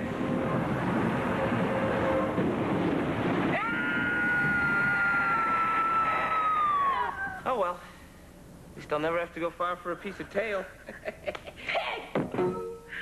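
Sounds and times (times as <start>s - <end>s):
high-pitched wail: 3.5s - 7.4s.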